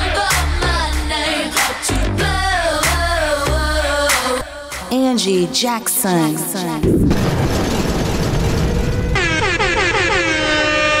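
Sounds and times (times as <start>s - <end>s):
air horn blasts: 9.0s - 11.0s.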